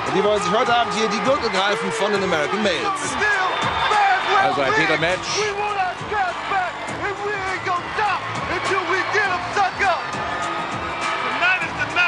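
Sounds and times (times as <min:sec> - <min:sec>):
man speaking energetically: 0:00.0 - 0:10.0, 0:11.4 - 0:12.0
background music: 0:00.0 - 0:12.0.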